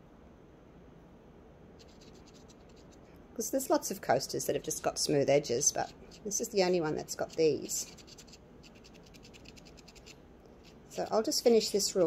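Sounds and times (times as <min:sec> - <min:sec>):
paint marker scratching on resin: 0:01.8 - 0:03.0, 0:04.5 - 0:12.0.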